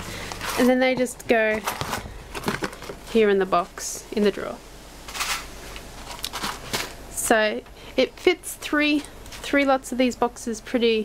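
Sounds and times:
paper rustling: 0.2 - 0.8, 1.5 - 3.1, 5.1 - 7.0.

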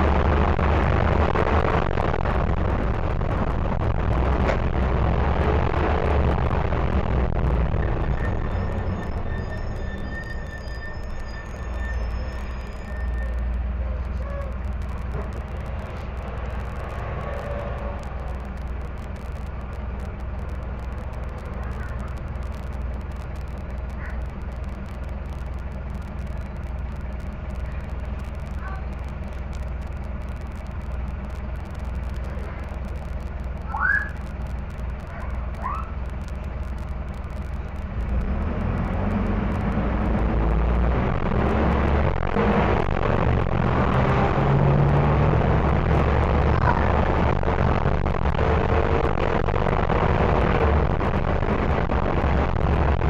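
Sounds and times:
bus diesel engine running: 0.0 - 53.0
high rising squeaks: 7.6 - 45.1.

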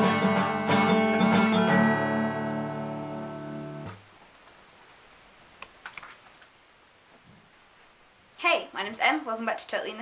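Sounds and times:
acoustic guitar chord ringing: 0.0 - 4.0.

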